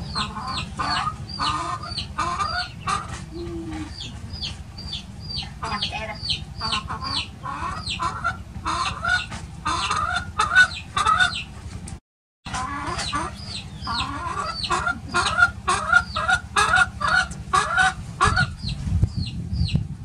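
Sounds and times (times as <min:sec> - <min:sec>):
chick peeping: 0:00.0 - 0:11.6, 0:12.5 - 0:19.9
chicken clucking: 0:00.0 - 0:11.8, 0:12.5 - 0:18.8.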